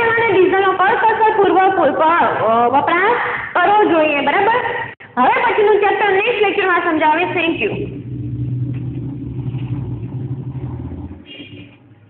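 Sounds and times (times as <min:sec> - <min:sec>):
low engine hum: 0:07.1 - 0:12.0.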